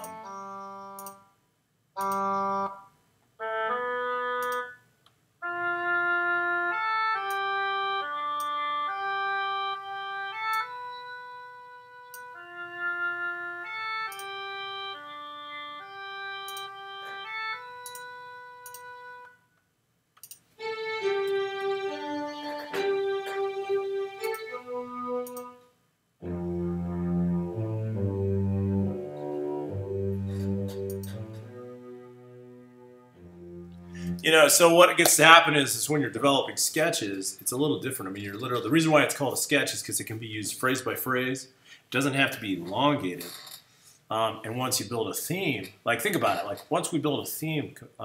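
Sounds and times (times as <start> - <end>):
oboe holding notes: 0.0 - 1.1, 5.4 - 19.4, 20.6 - 35.4
string section chords: 0.0 - 1.1, 20.6 - 36.3.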